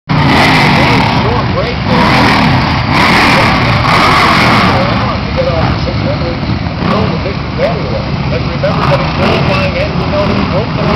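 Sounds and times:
racing motorbike engines revving: 0:00.1 - 0:10.9
people's voices: 0:00.4 - 0:10.9.

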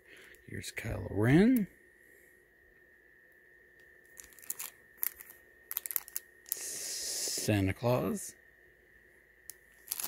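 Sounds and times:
plastic bags crinkling: 0:04.1 - 0:06.6, 0:09.8 - 0:10.0.

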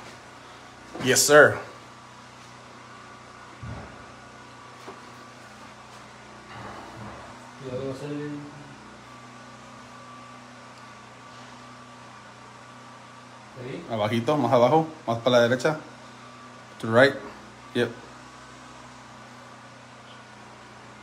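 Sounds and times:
room hum: 0:00.0 - 0:21.0
thin steady whine: 0:00.0 - 0:21.0.

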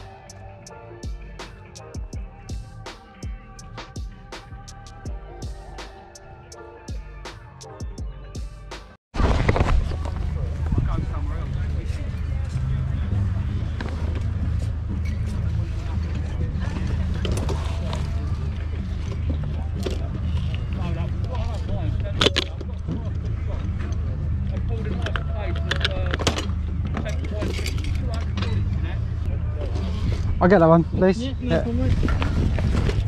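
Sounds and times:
wind rumble on microphone: 0:09.2 - 0:20.4, 0:29.7 - 0:33.0
people chatting: 0:10.2 - 0:14.2, 0:15.3 - 0:26.2.

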